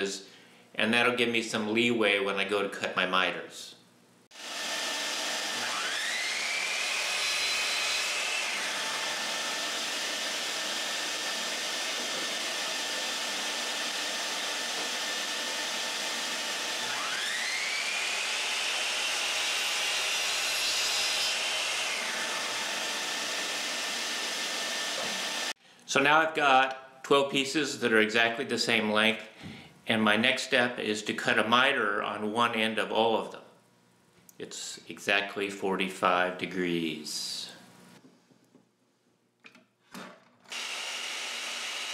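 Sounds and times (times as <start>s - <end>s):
miter saw motor whine: 4.4s - 20.5s, 40.5s - 41.9s.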